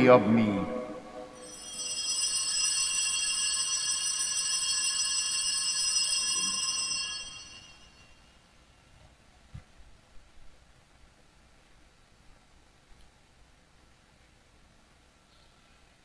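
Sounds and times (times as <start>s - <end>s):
altar bells ringing: 0.0s - 8.3s.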